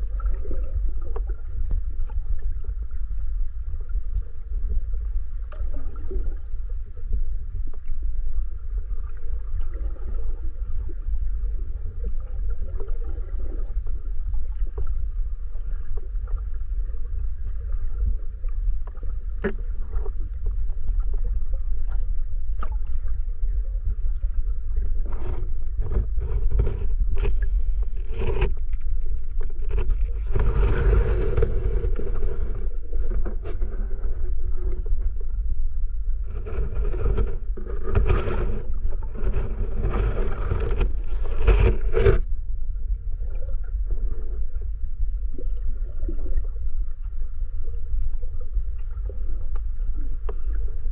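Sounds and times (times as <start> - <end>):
underwater rumble of moving water: 0.0 - 50.9.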